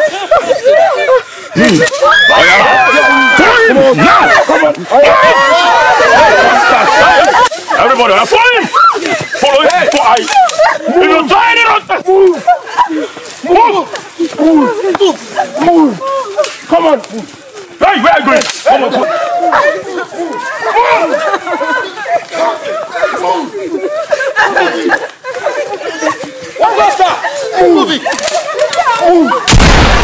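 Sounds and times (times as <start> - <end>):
people shouting and crying out: 0.0 - 30.0
loud gunshot: 29.5 - 30.0.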